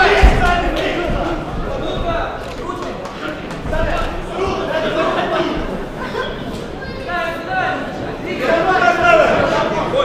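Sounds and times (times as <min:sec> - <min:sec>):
crowd noise in a hall: 0:00.0 - 0:10.0.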